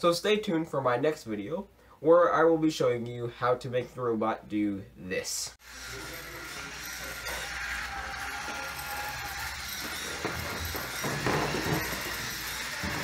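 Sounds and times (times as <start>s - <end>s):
toy car motor whirring: 5.6s - 13.0s.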